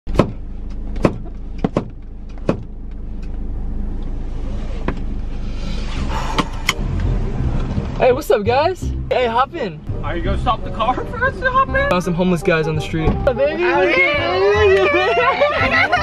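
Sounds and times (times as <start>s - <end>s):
sharp clicks and knocks: 0.1s - 3.4s
car cabin rumble: 0.1s - 16.0s.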